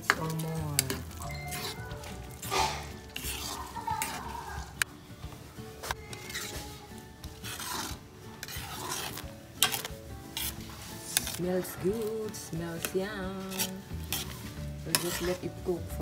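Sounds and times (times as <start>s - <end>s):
metal spoon scraping a pan: 0.0s - 4.8s, 5.8s - 16.0s
spoon clinking against pan: 0.6s - 4.2s.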